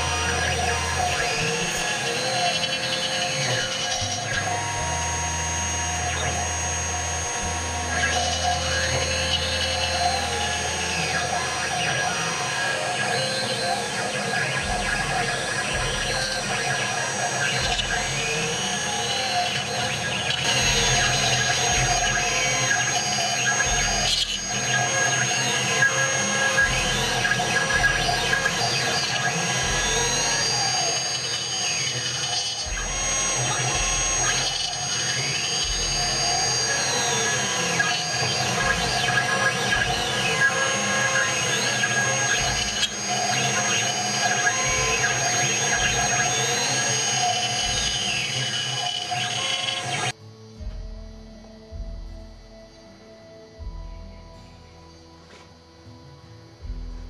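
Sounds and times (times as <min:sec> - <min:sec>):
stepper motors whine gliding: 0:00.0 - 0:55.8
router spindle whine: 0:00.0 - 0:57.0.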